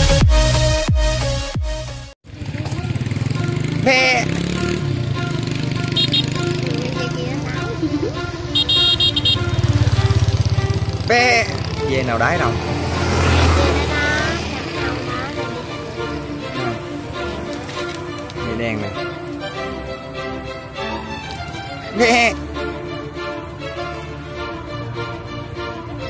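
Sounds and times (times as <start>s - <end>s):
motorbike engine running: 2.2s - 22.3s.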